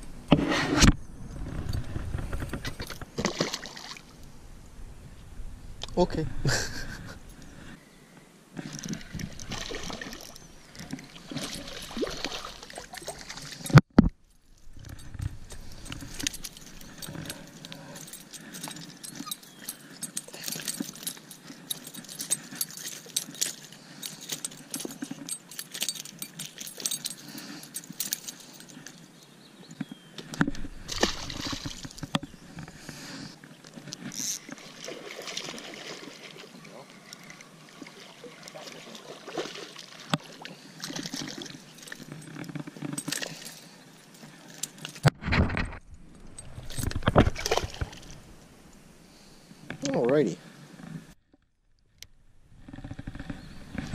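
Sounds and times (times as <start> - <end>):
fishing gear clicking and knocking: 8.6 - 29.0, 29.7 - 34.8, 40.1 - 49.0, 50.8 - 53.9.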